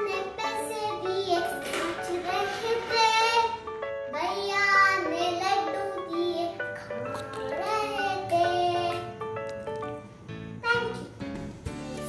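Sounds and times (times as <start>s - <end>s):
girl singing nursery rhyme: 0.0s - 9.4s, 10.5s - 11.2s.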